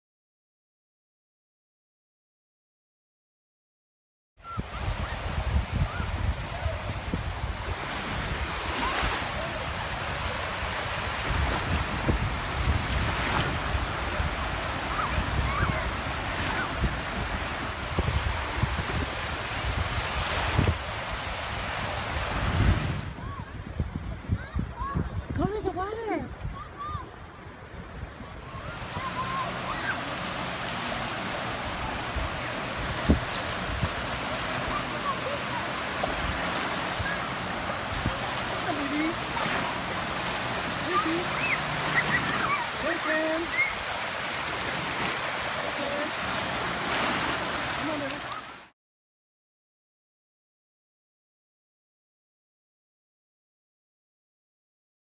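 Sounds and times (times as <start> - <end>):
wind gusting on microphone: 4.4 - 48.3
small waves washing onto shore: 4.5 - 25.2, 25.9 - 48.7.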